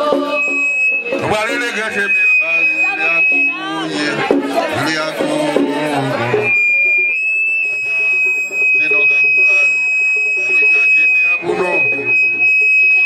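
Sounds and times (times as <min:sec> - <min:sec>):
background voices: 0:00.0 - 0:06.6
high-pitched whistle-like tone: 0:00.0 - 0:13.0.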